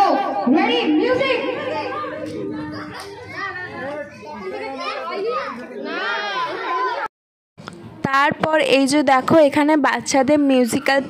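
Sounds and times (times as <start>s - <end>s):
children and adults talking: 0.0s - 7.1s, 7.7s - 11.0s.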